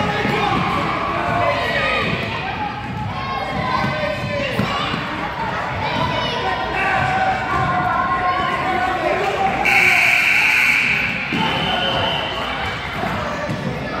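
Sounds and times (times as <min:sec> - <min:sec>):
children and spectators talking: 0:00.0 - 0:14.0
shrill high signal: 0:09.6 - 0:12.4.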